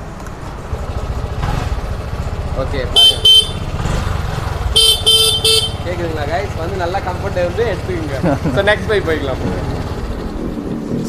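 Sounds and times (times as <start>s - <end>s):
moped engine idling: 0.4s - 10.7s
moped horn beeps: 2.9s - 3.8s, 4.7s - 6.0s.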